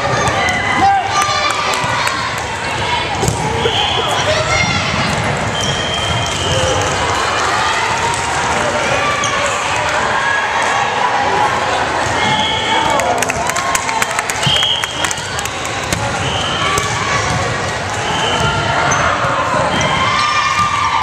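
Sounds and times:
people calling and shouting: 0.0 - 13.2.

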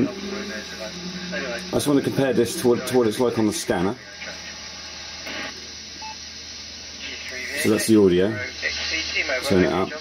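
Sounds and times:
radio band noise hiss: 0.0 - 10.0.

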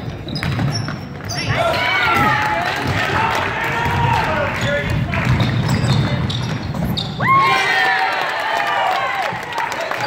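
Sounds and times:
sneakers squeaking on floor: 0.0 - 3.0, 4.6 - 7.4
basketball bouncing: 0.0 - 7.2
spectators' voices and shouts: 1.3 - 5.4.

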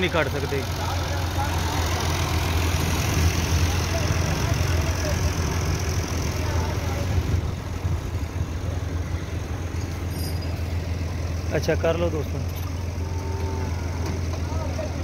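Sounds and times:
tractor engine idling: 0.0 - 15.0.

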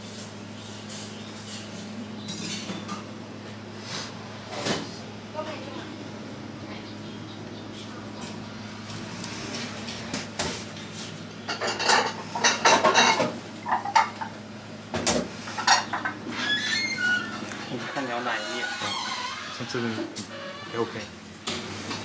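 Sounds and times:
steady low hum: 0.0 - 16.4.

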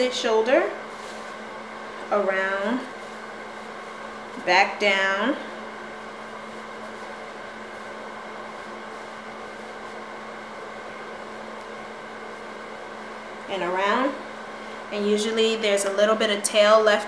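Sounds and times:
steady motor hum: 0.0 - 17.0.

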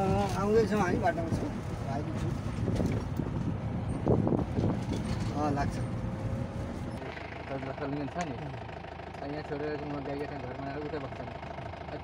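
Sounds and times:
engine and road rumble: 0.0 - 12.0.

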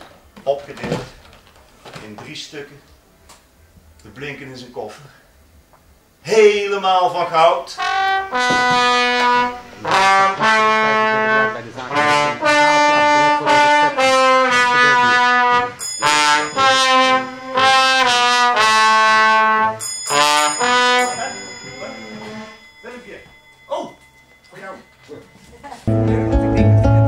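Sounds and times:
slide trombone held notes: 7.6 - 22.7.

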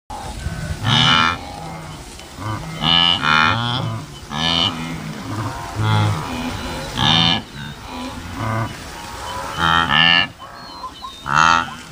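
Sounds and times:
low deep animal calls: 0.1 - 11.9
wildebeest mooing calls: 0.1 - 11.9.

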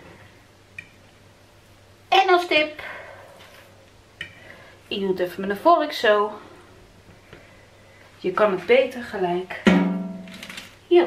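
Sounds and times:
woman's voice: 2.1 - 3.1, 4.9 - 6.5, 8.2 - 9.7.

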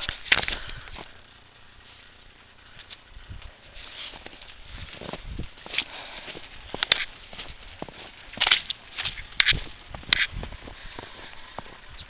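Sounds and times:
footsteps in snow: 2.9 - 12.0
soft low thumps: 4.2 - 12.0.

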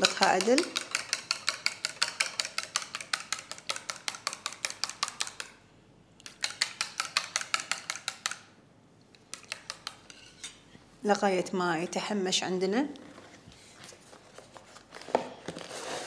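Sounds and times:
utensil beating egg in metal bowl: 0.0 - 5.5, 6.2 - 8.5, 9.2 - 10.5.

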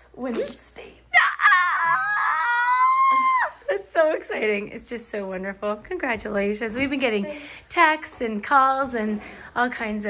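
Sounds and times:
girl squealing with joy: 1.2 - 3.7.

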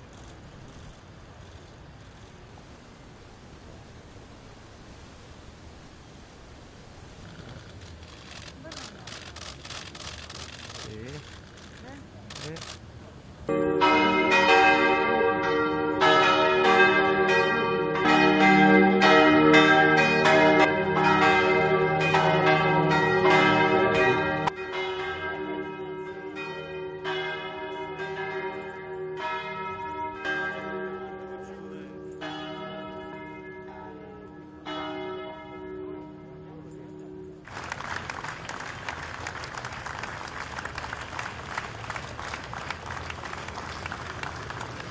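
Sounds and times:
church bells ringing: 13.5 - 37.5
crowd applauding: 37.4 - 44.9.

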